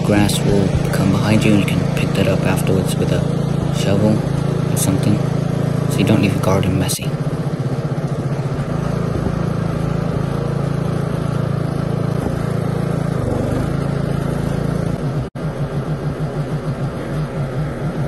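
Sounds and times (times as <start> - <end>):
ride-on mower engine running: 0.0 - 18.0.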